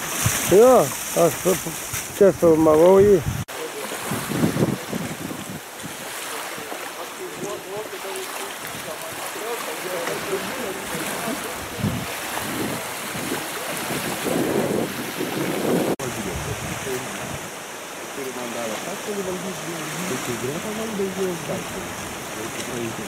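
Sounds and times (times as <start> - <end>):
wind on microphone: 0.0 - 7.9, 10.1 - 17.7
small waves lapping: 0.0 - 23.0.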